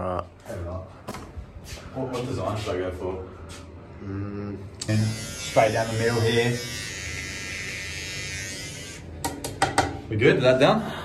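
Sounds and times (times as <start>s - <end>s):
electric shaver buzzing: 4.8s - 9.5s.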